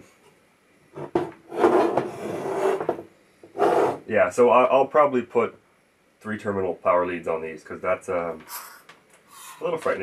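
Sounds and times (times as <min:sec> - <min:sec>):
metal scraping and rubbing: 0:01.0 - 0:04.1.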